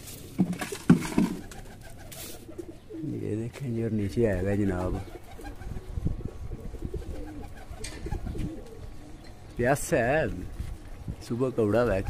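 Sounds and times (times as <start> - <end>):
pigeons cooing: 0.0 - 12.0.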